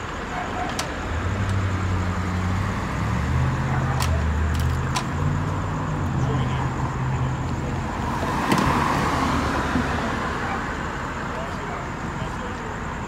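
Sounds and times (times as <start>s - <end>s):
vehicle passing: 1.1s - 12.2s.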